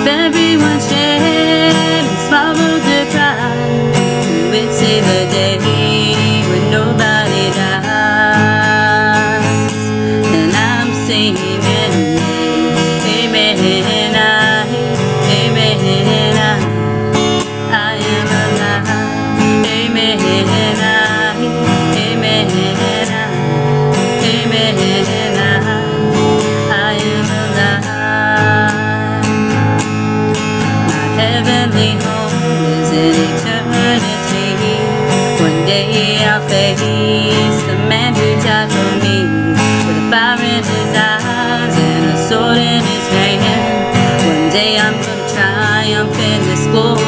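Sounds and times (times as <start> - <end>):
acoustic guitar strumming: 0.0 - 47.0
woman singing: 0.0 - 47.0.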